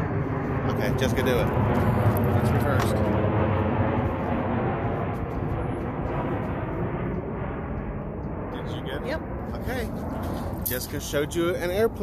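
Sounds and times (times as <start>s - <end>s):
airplane engine rumble: 0.0s - 12.0s.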